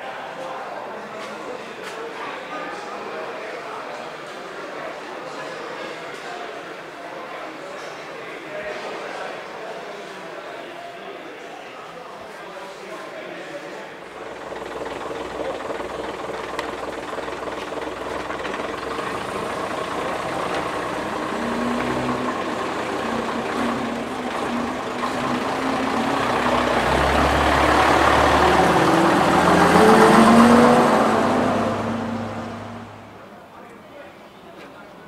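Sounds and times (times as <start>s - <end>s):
bus engine driving past: 13.7s - 33.6s.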